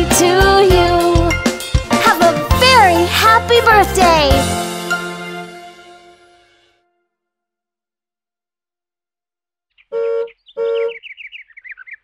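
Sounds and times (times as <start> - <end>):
descending bird chirps: 9.7 - 12.0.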